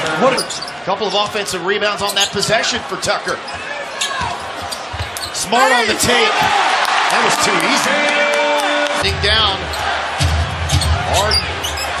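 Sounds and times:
sneaker squeaks: 0.0s - 6.6s, 10.7s - 12.0s
pulsing low arena background: 7.4s - 12.0s.

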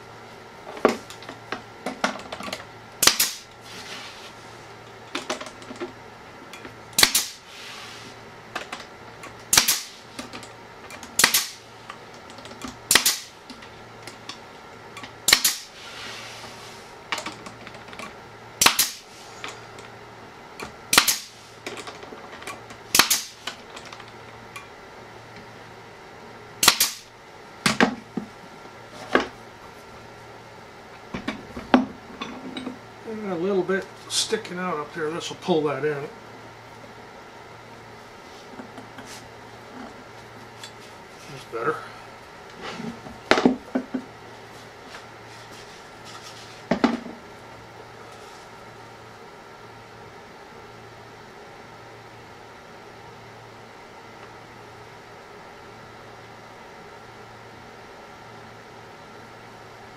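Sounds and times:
nail gun shots into wood: 3.0s - 3.4s, 7.0s - 7.4s, 9.5s - 9.9s, 11.2s - 11.6s, 12.9s - 13.3s, 15.3s - 15.7s, 18.6s - 19.0s, 20.9s - 21.3s, 22.9s - 23.4s, 26.6s - 27.1s.

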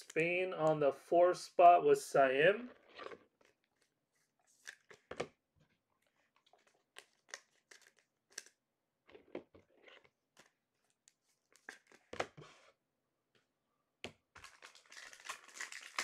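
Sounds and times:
cards crinkling and clicking: 4.6s - 5.2s, 6.4s - 8.6s, 14.4s - 16.0s.

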